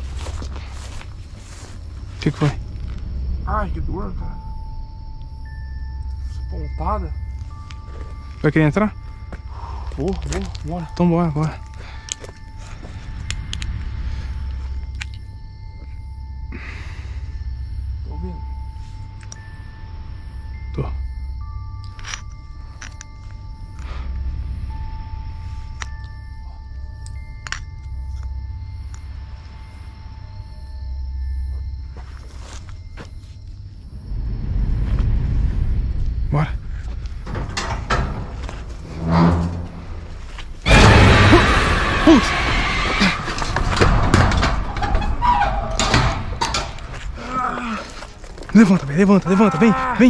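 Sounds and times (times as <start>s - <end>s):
eerie background music: 0.0s - 50.0s.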